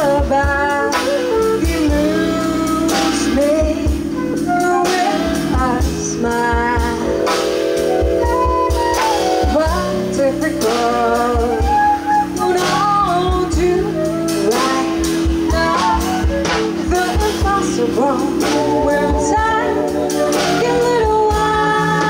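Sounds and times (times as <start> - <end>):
woman singing: 0.0 - 7.5, 8.3 - 22.0
flute: 0.0 - 22.0
live jazz band: 0.0 - 22.0.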